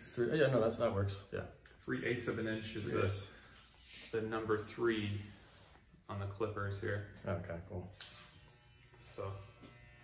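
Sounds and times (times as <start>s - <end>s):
hair clippers buzzing: 7.9s - 10.0s
hair clippers switch click: 8.0s - 8.6s.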